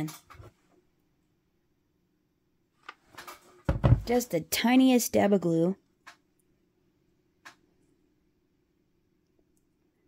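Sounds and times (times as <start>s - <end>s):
dull thump of items: 3.6s - 4.2s.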